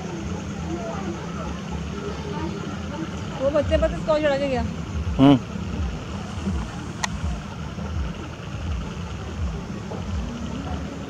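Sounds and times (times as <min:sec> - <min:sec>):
steady low rumble: 0:00.0 - 0:11.0
person's voice: 0:05.2 - 0:05.4.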